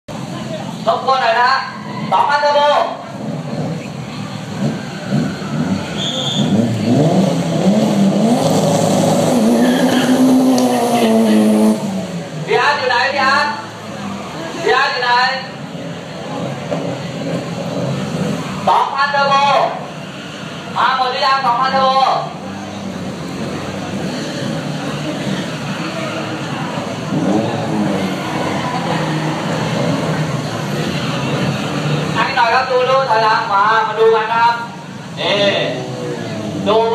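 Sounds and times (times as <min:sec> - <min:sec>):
racing car engine revving: 0:02.9 - 0:36.9.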